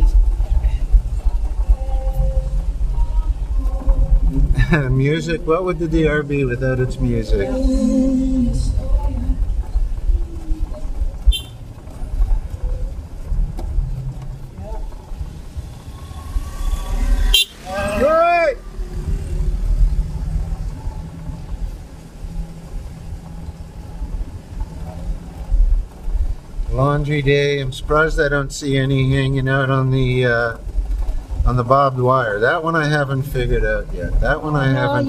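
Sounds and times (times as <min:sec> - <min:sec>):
car engine and road rumble: 0:00.0 - 0:35.0
brief rising and falling tone: 0:03.5 - 0:09.6, 0:15.2 - 0:19.9.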